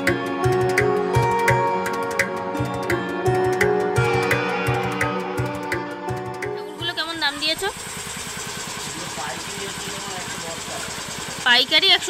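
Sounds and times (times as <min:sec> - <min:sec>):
small engine running: 0:04.0 - 0:12.0.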